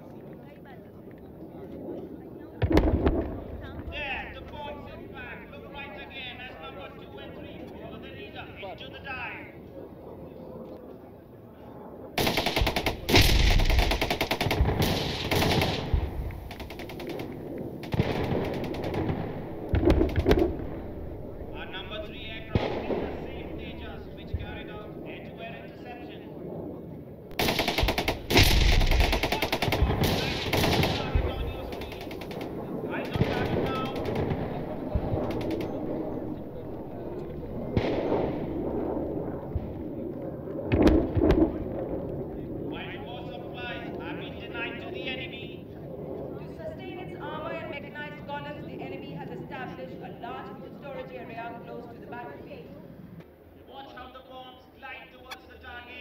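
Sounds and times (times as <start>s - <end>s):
explosions with deep rumble: 2.6s - 5.2s, 12.2s - 25.7s, 27.3s - 43.3s.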